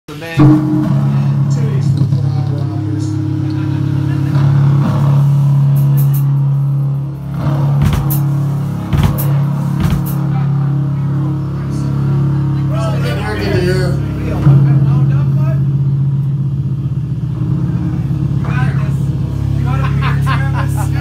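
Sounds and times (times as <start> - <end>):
electric guitars droning: 0.1 - 21.0
sharp hits: 0.3 - 12.6.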